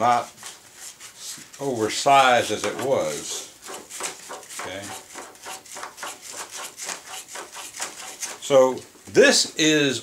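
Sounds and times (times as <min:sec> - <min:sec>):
quick rubbing strokes: 0:00.1 - 0:08.5.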